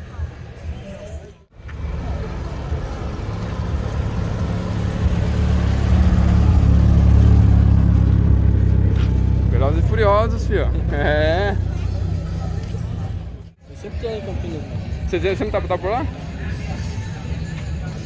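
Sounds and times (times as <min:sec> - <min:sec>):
car engine running: 0:01.6 - 0:13.6.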